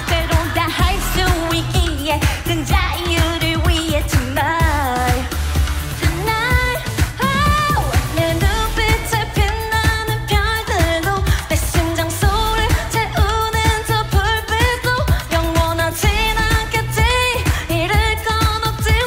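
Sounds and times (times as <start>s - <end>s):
woman singing dance-pop song: 0.0s - 19.0s.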